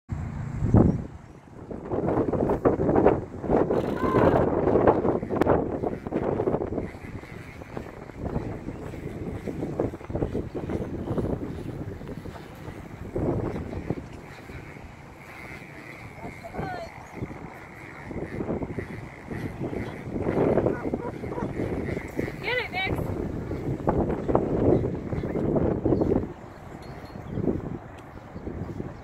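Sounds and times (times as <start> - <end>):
wind buffeting microphone: 0.1 - 29.0
faint voices: 3.7 - 4.5, 8.3 - 23.2.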